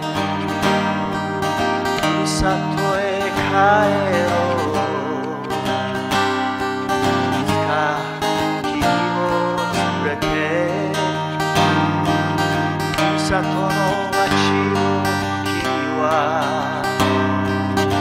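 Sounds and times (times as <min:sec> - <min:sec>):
man singing folk ballad: 0:00.0 - 0:18.0
steel-string acoustic guitar: 0:00.0 - 0:18.0.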